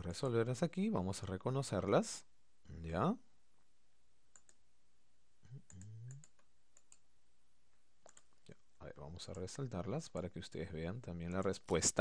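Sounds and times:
computer mouse clicks: 0:04.3 - 0:04.6, 0:05.7 - 0:07.0, 0:08.0 - 0:08.6
person speaking: 0:08.2 - 0:12.0.

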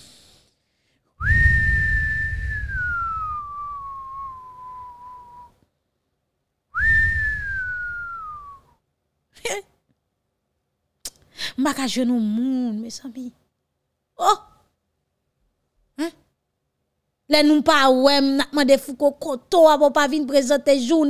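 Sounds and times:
long gliding whistles: 0:01.2 - 0:05.6, 0:06.8 - 0:08.7.

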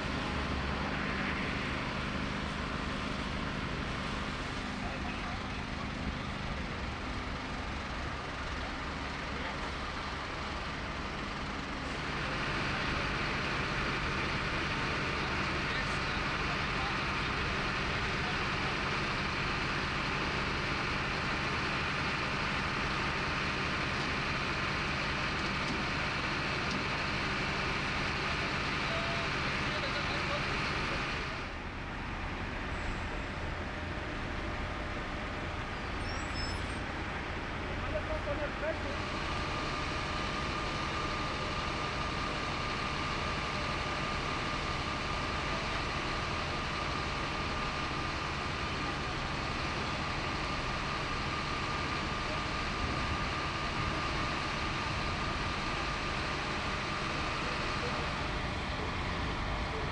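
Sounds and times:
diesel engines idling: 0:00.0 - 0:59.9.

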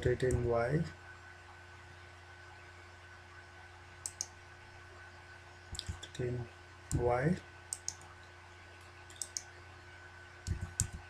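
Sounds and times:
faint hum: 0:00.0 - 0:11.0
sharp computer input clicks: 0:07.8 - 0:08.0, 0:09.1 - 0:09.4.

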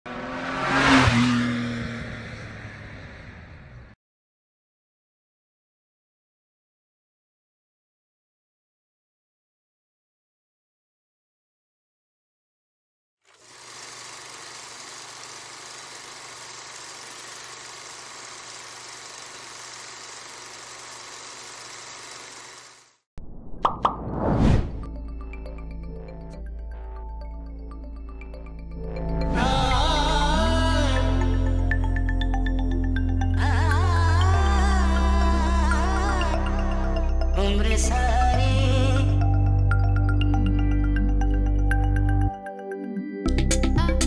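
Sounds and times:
car passing by: 0:00.1 - 0:03.9
machine whirring: 0:13.3 - 0:23.0
music intro: 0:23.7 - 0:44.0.

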